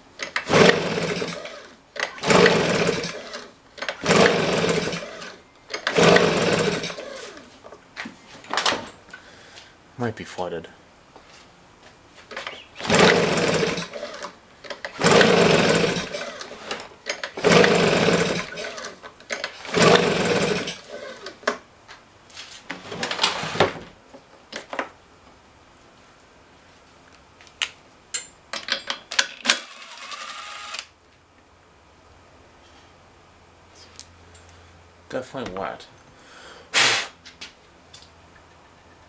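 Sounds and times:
engine cranking rattle: 0.2s - 7.3s, 12.8s - 21.4s
leaf blower recoil starter pulls: 0.2s - 7.5s, 12.3s - 21.6s
sharp clicks and handling noises: 18.8s - 19.6s, 26.9s - 29.9s.

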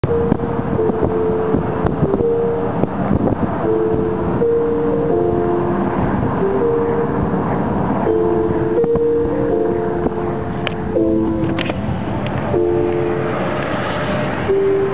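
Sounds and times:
car road and engine noise: 0.0s - 14.9s
music playing: 0.0s - 14.9s.

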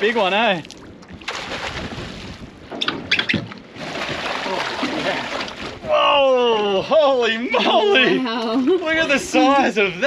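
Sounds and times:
water splashing and sloshing: 0.0s - 10.0s.

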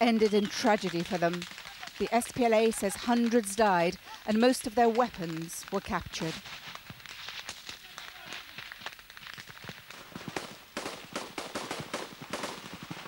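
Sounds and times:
rifle shots: 9.9s - 13.0s.

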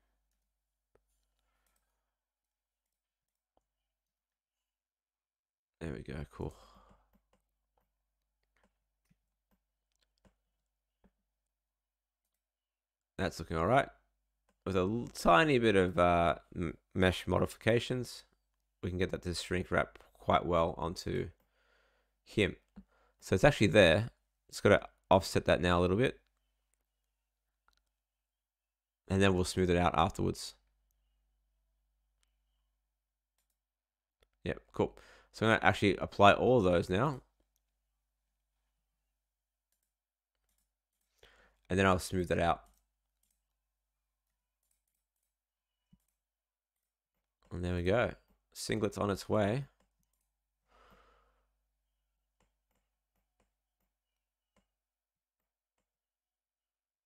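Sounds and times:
man speaking: 5.8s - 6.8s, 13.2s - 14.0s, 14.7s - 18.2s, 18.8s - 21.4s, 23.2s - 26.2s, 29.1s - 30.6s, 34.4s - 37.3s, 41.7s - 42.7s, 47.5s - 49.8s.

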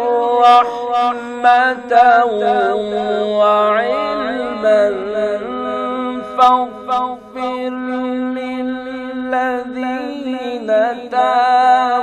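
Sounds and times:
man reciting in melismatic chant: 0.0s - 12.0s.

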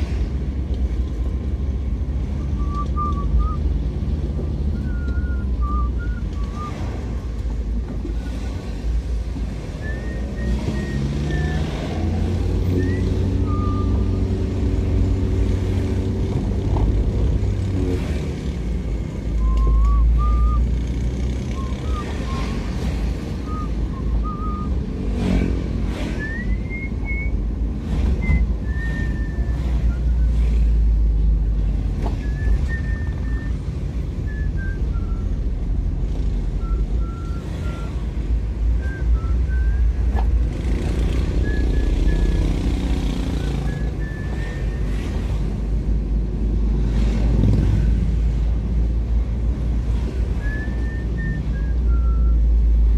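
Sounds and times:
vehicle engine and road noise: 0.0s - 52.9s.

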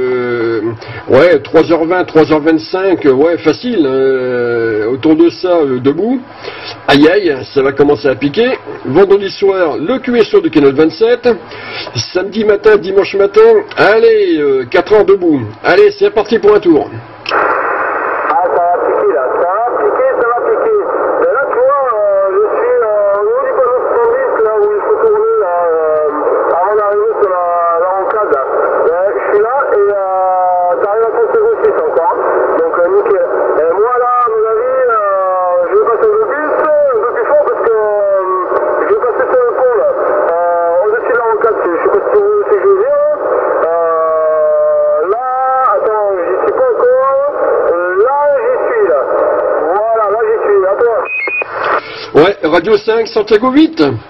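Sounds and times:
voice over radio speaker: 6.8s - 54.0s.

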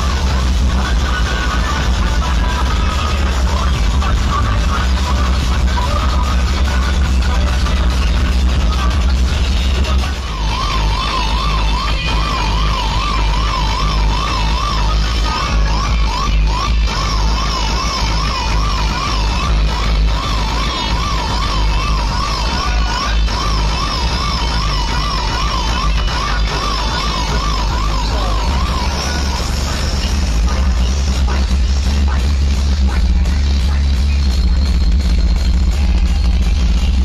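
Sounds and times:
dance music with heavy bass: 0.0s - 37.0s
siren-like warble: 10.3s - 31.4s.

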